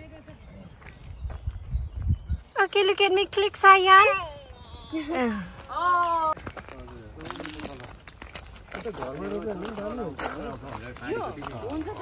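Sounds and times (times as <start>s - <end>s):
footsteps on gravel: 0.1s - 2.2s, 5.3s - 12.0s.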